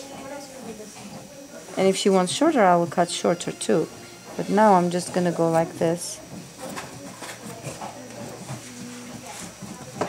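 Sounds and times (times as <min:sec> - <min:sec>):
faint murmured voices: 0:00.0 - 0:10.0.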